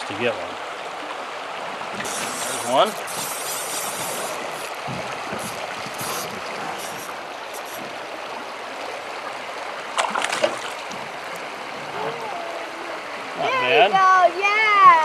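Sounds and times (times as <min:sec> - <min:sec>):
fish splashing: 0:01.9 - 0:08.7, 0:09.9 - 0:13.3.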